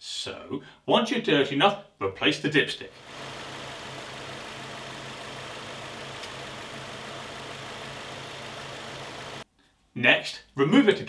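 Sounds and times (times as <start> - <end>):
car engine idling: 3.0 - 9.4.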